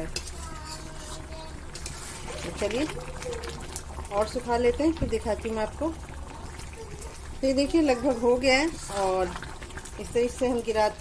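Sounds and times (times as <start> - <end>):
metal spatula scraping pan: 0.0 - 2.8
chutney bubbling and popping: 0.0 - 11.0.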